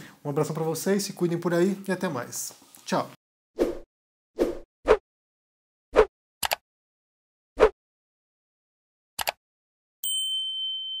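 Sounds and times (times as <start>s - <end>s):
double mouse click: 9.2s - 9.4s
bright bell-like ding: 10.0s - 11.0s.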